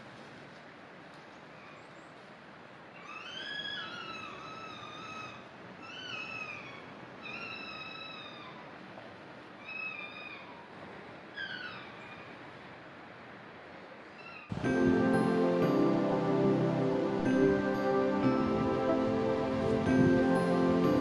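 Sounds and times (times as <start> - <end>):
foxes whining cries: 3.0 - 8.8, 9.6 - 12.4.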